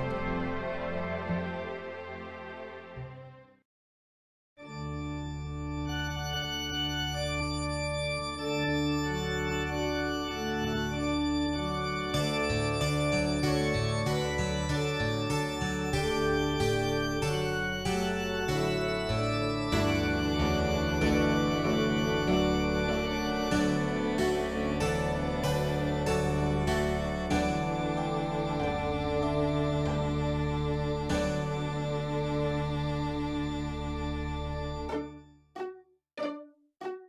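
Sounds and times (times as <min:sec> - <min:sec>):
organ chords: 0:04.6 - 0:35.2
low bass: 0:15.8 - 0:35.0
struck melody notes: 0:15.9 - 0:32.3.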